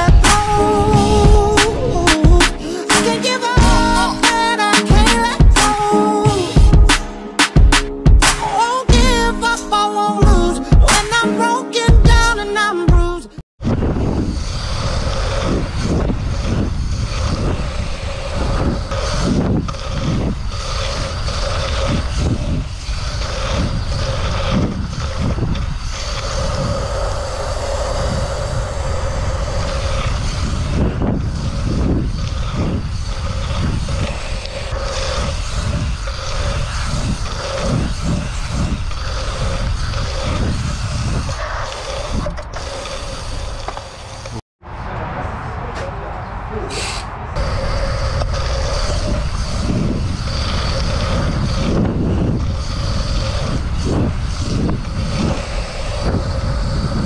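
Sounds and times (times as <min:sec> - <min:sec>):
wind buffeting microphone: 0:00.0 - 0:09.6, 0:13.0 - 0:57.0
bike tyres rolling on dirt: 0:13.6 - 0:44.4, 0:47.4 - 0:57.0.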